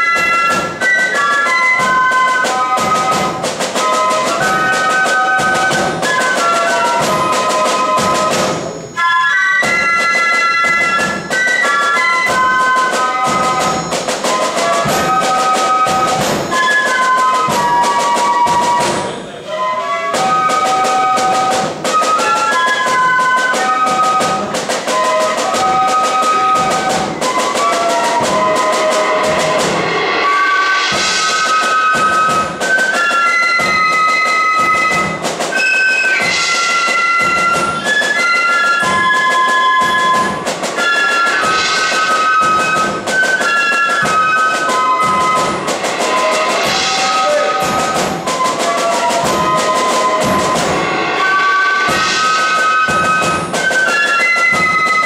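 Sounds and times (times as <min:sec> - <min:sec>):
flutes playing melody: 0:00.0 - 0:55.0
side drum strokes: 0:00.0 - 0:55.0.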